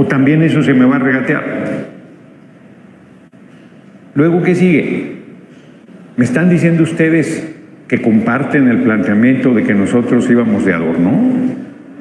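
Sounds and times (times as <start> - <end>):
low room background noise: 0.0 - 12.0.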